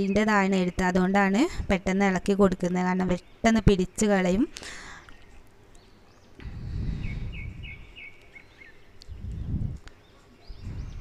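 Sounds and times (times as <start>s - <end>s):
bird chirping: 0.0s - 1.4s, 2.0s - 11.0s
low rumbling noise: 6.4s - 8.2s, 9.0s - 9.9s, 10.6s - 11.0s.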